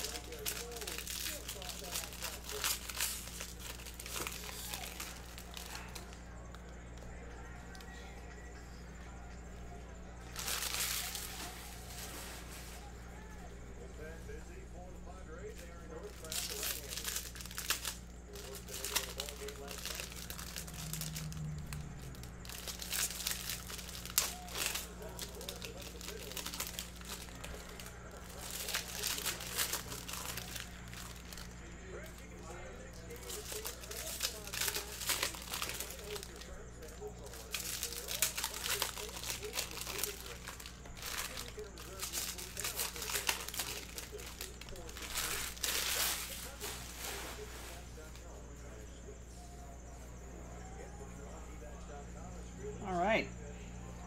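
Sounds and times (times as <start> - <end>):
foil wrappers crinkling and tearing: 0.0 - 8.0, 10.1 - 48.6
steady low hum: 0.0 - 54.0.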